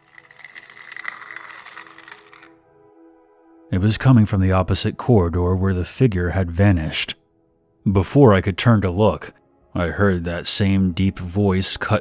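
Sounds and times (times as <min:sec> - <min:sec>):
metal scraping: 0:00.0 - 0:02.6.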